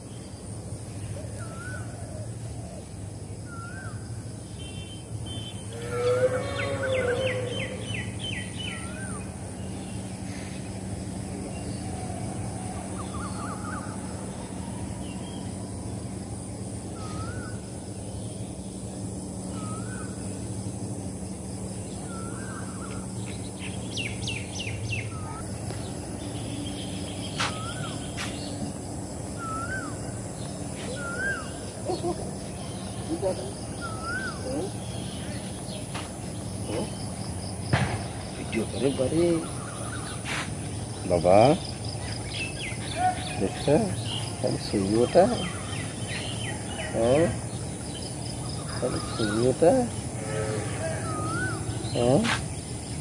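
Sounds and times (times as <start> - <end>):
steady low hum: 0.0 - 53.0
bird whistled calls: 17.0 - 17.7, 19.5 - 20.2, 22.0 - 23.0, 27.3 - 28.6, 29.4 - 30.2, 30.8 - 31.7, 33.7 - 35.3, 50.2 - 52.4.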